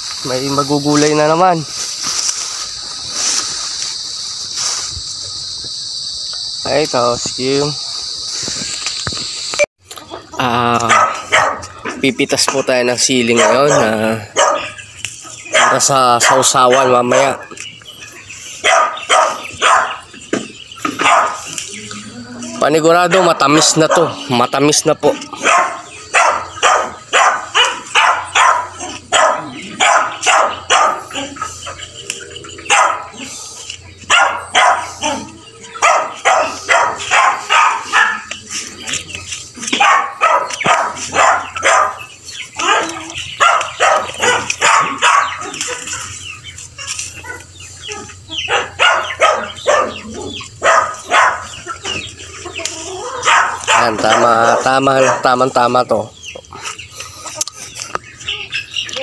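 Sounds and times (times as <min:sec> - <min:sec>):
chickens clucking: 0:00.0 - 0:59.0
dog barking: 0:10.8 - 0:11.8, 0:13.2 - 0:14.8, 0:15.4 - 0:17.5, 0:18.6 - 0:20.1, 0:20.9 - 0:21.6, 0:23.0 - 0:24.3, 0:25.3 - 0:31.7, 0:32.6 - 0:33.4, 0:34.0 - 0:38.6, 0:39.6 - 0:45.8, 0:47.1 - 0:52.0, 0:52.9 - 0:55.7.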